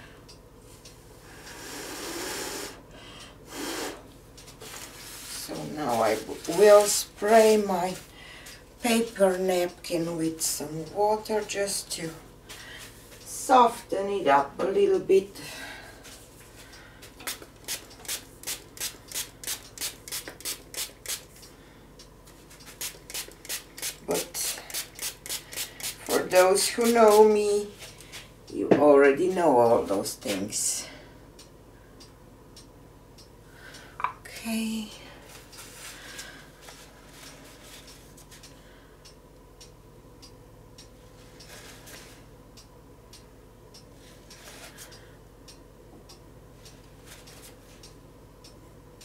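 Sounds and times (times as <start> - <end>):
person exhaling close to microphone: 1.4 - 4.0.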